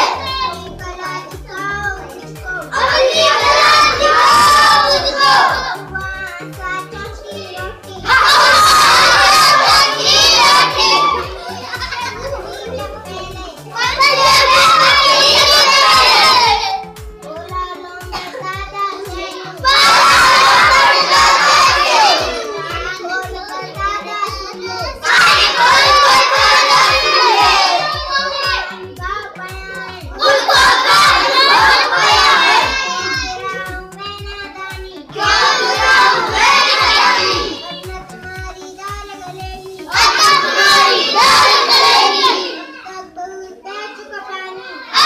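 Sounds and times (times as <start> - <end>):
steady low beat: 0.0 - 17.6
girl reciting in sing-song voice: 0.0 - 45.0
soft children's voices: 0.0 - 45.0.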